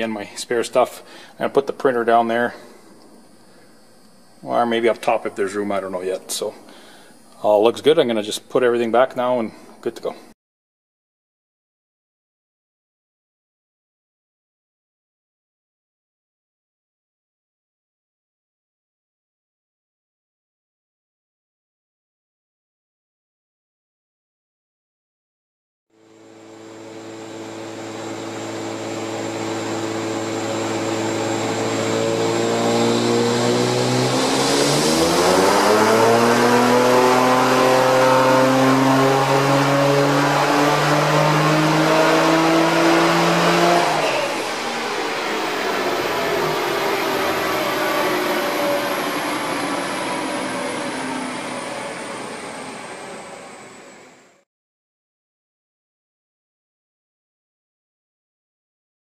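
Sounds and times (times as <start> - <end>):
high whine falling in pitch: 26.1 - 54.4
car engine revving: 28.9 - 53.7.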